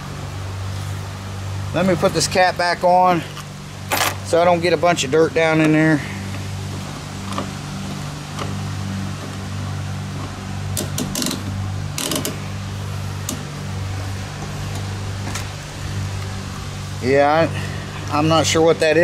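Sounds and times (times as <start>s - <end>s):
low mechanical hum: 0.0s - 19.0s
clicks and rattles of hands working: 10.1s - 12.4s.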